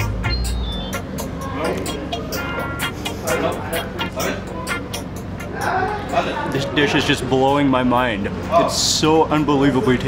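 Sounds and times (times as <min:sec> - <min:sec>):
background music with percussion beat: 0:00.0 - 0:06.2.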